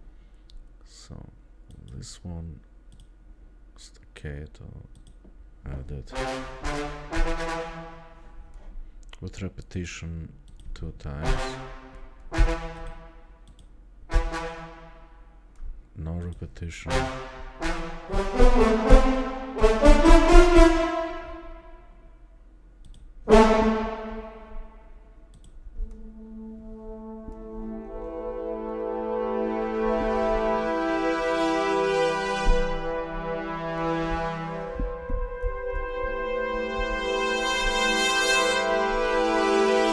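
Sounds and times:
staccato brass chords: 5.9s - 8.6s, 11.2s - 13.4s, 14.1s - 15.4s, 16.8s - 22.2s, 23.3s - 39.9s.

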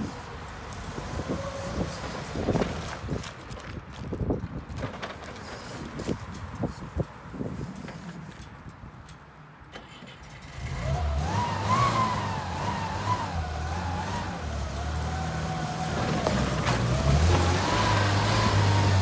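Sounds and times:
truck engine: 0.0s - 3.8s, 9.6s - 19.0s.

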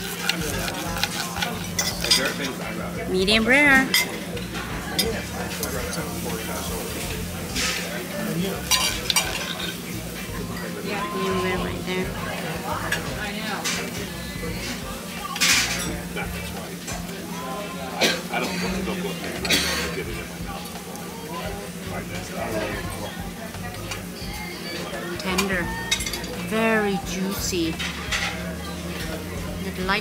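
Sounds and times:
knife and fork scraping plate: 0.0s - 2.6s
faint voices: 0.0s - 30.0s
cutlery clinking on plate: 0.1s - 2.6s, 8.7s - 9.8s, 15.2s - 16.0s.

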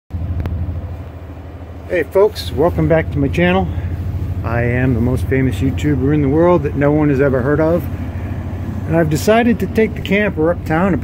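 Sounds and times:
pulsing motor rumble: 0.1s - 11.0s.

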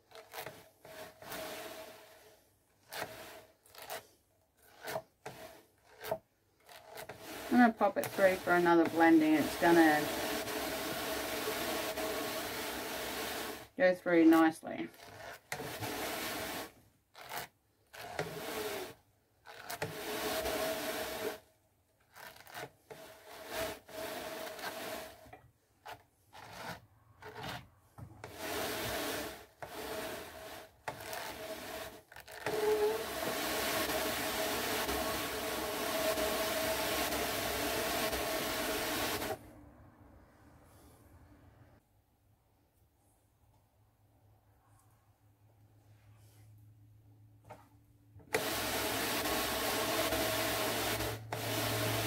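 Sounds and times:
drum carder rasping through fibre: 0.0s - 39.4s, 48.2s - 52.0s.

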